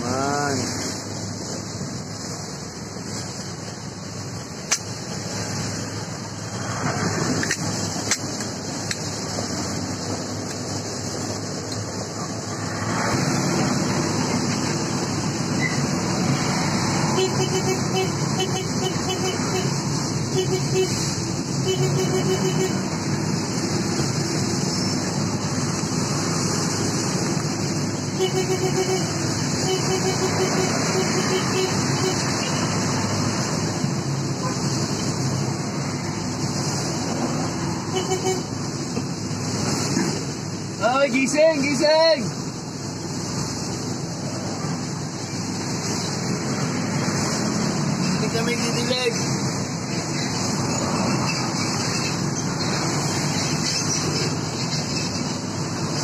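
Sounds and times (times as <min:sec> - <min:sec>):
road traffic from inside vehicle: 0:00.0 - 0:56.0.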